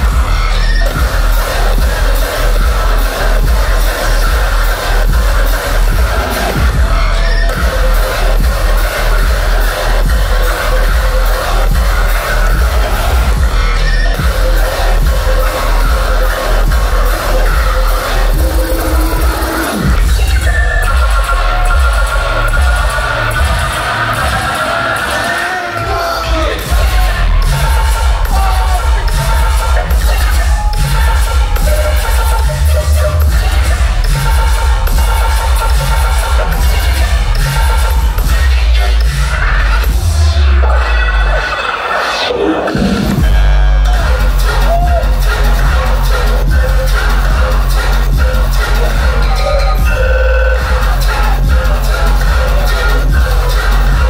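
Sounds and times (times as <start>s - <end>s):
dubstep with heavy sub-bass: 0.0s - 54.0s.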